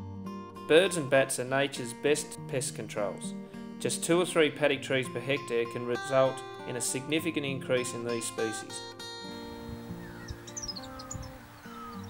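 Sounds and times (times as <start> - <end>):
soft acoustic guitar music: 0.0 - 12.0
small bird chirping: 9.9 - 12.0.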